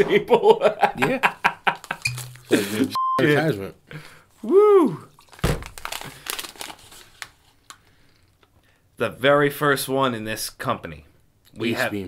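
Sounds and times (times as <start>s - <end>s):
wrapping paper crinkling and tearing: 5.2s - 7.8s.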